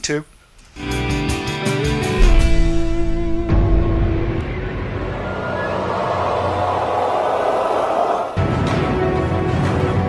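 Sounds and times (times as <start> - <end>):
low music notes: 0.8 - 5.2
rushing sound effect: 2.2 - 8.4.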